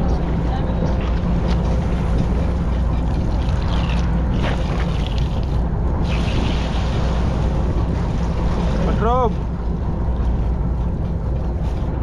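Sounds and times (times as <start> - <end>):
boat engine running: 0.0 - 12.0
water and wind noise: 0.0 - 12.0.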